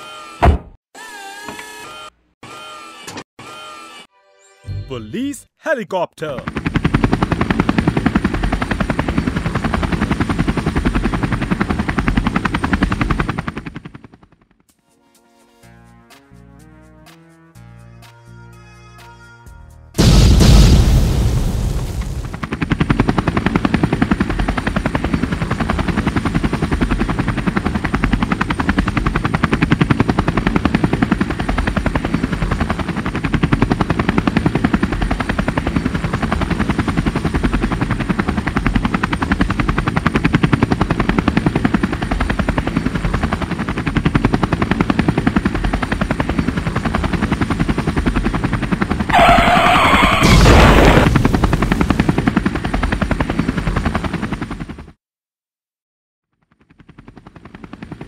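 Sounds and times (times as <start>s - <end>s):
helicopter rotor chopping: 6.2s - 14.7s, 21.5s - 55.0s, 56.5s - 58.0s
loud crash: 20.0s - 22.3s, 49.2s - 51.9s.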